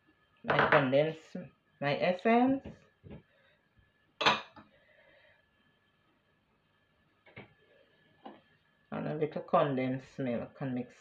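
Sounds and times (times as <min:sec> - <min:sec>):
kitchenware clink: 0:04.2 - 0:04.6.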